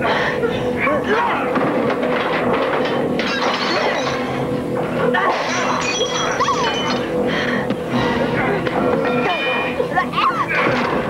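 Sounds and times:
tense music score: 0:00.0 - 0:11.0
crashing: 0:01.6 - 0:04.5
wood and glass breaking: 0:01.6 - 0:04.5, 0:05.1 - 0:07.0.

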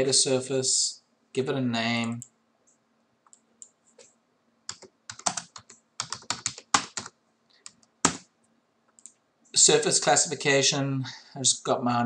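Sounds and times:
typing on computer keyboard: 0:04.7 - 0:08.2.

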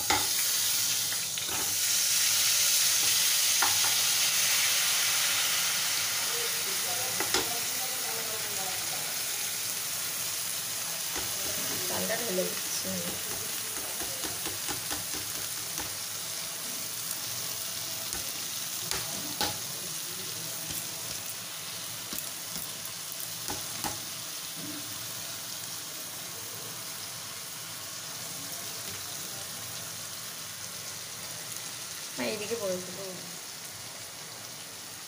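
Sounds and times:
rice sizzling in hot oil: 0:00.0 - 0:35.0.

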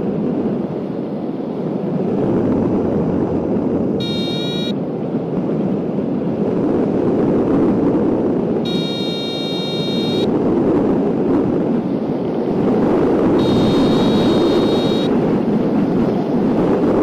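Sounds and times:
wind rushing over microphone: 0:00.0 - 0:17.0
electronic variometer tone: 0:04.0 - 0:04.8, 0:08.7 - 0:10.3, 0:13.4 - 0:15.2.

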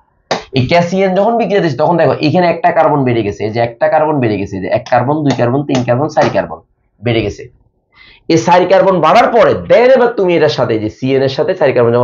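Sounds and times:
man talking: 0:00.3 - 0:07.6, 0:08.3 - 0:12.0.

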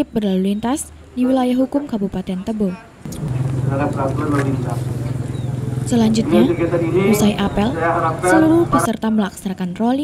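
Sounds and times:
steady low hum: 0:03.0 - 0:08.9
man speaking over a microphone: 0:03.2 - 0:05.0, 0:06.1 - 0:08.9.

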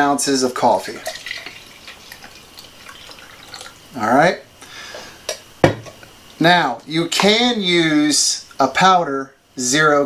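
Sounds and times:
coffee trickling into glass jar: 0:00.8 - 0:03.8.

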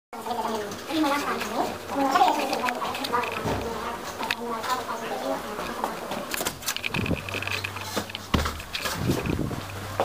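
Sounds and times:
indistinct voices talking: 0:00.2 - 0:08.2.

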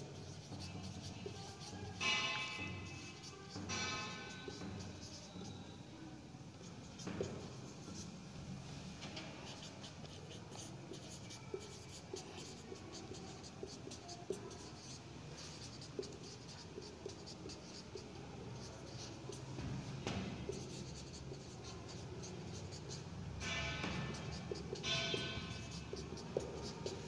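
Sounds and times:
marker writing on whiteboard: 0:00.0 - 0:05.8, 0:06.6 - 0:08.1, 0:09.0 - 0:27.0.

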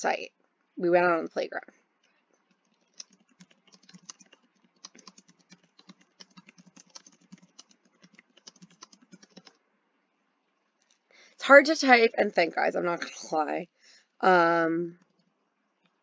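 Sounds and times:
typing on computer keyboard: 0:02.5 - 0:09.6.

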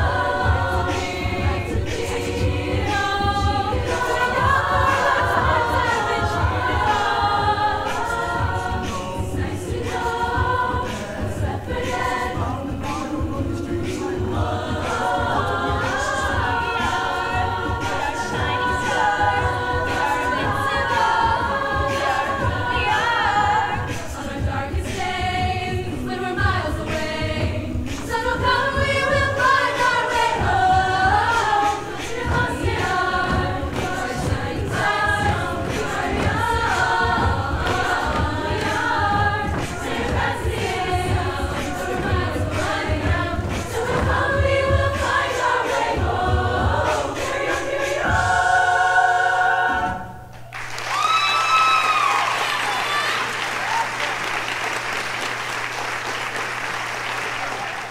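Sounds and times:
choir singing a cappella: 0:00.0 - 0:50.4
high whooping cheer: 0:50.5 - 0:54.4
audience applause: 0:50.5 - 0:57.9.

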